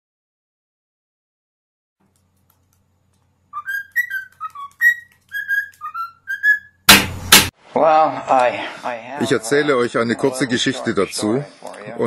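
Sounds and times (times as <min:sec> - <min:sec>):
bird whistling short notes: 0:03.6 - 0:06.8.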